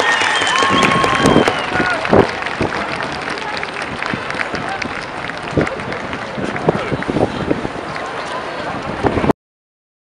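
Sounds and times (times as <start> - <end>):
crowd talking: 0.0 - 9.3.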